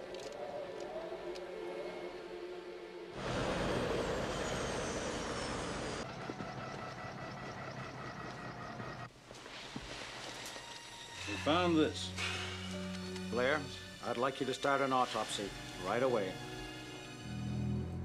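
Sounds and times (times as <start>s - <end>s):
helicopter rotor noise: 3.2s - 9.1s
turbine whine: 3.2s - 9.1s.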